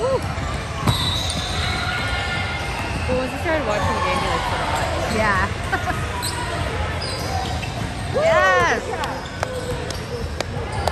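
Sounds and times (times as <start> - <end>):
sneaker squeak on court: 0.4 - 2.1, 6.2 - 10.9.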